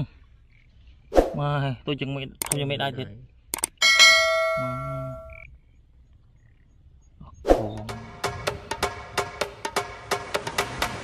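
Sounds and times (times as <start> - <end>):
bright bell ding: 3.8 - 5.3
intro music with wood-block beat: 7.6 - 11.0.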